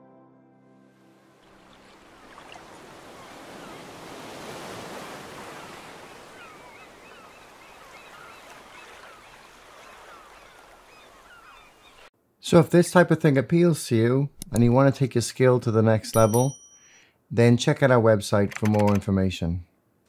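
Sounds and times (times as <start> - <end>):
small waves washing over rocks: 1.4 - 11.3.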